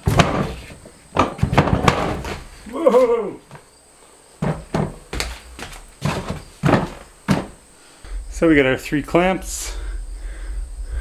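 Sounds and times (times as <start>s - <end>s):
tools knocking against a wall: 4.4s - 5.3s, 6.0s - 7.6s.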